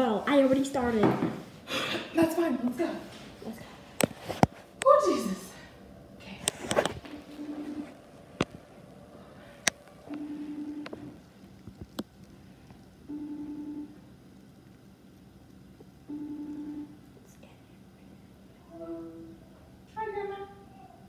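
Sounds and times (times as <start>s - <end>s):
phone ringing tone beeps: 7.2s - 7.9s, 10.1s - 10.9s, 13.1s - 14.0s, 16.1s - 17.0s.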